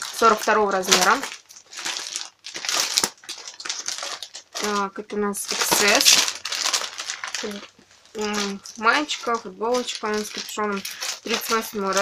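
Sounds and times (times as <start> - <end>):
plastic packs crinkling: 0.0 - 12.0.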